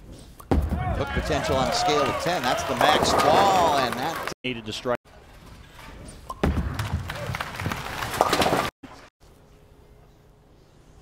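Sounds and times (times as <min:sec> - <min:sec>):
crowd shouting: 0:00.8 - 0:04.2.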